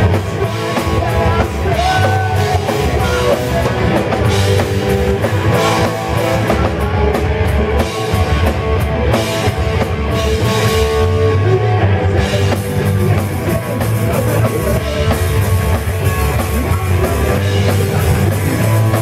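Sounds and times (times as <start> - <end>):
drum kit: 0.0 - 19.0
electric guitars: 0.0 - 19.0.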